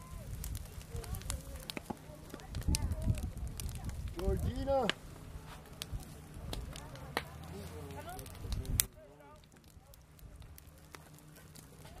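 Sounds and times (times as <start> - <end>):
wood fire crackling: 0.0 - 12.0.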